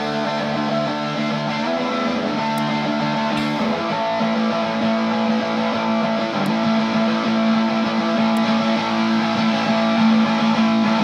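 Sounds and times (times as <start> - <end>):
fuzzed electric guitar note: 0.0 - 11.0.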